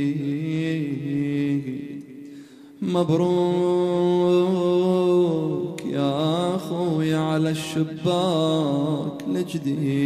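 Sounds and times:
man chanting a lament: 0.0s - 10.0s.

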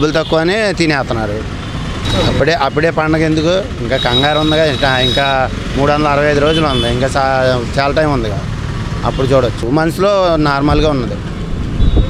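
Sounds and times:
man talking: 0.0s - 1.5s, 2.1s - 11.2s
vehicle passing rumble: 0.0s - 12.0s.

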